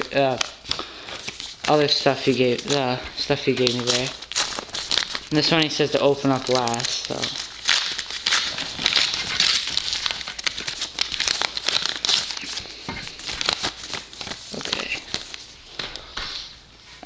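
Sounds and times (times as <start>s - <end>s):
paper rustling and crinkling: 0.0s - 16.6s.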